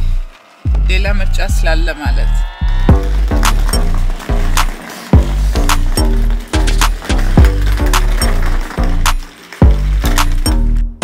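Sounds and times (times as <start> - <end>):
background music with bass beat: 0.0 - 11.0.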